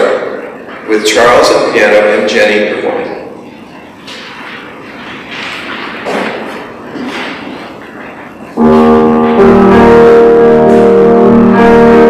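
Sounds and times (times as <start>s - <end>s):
low room noise: 0.0s - 12.0s
grand piano chords: 8.1s - 12.0s.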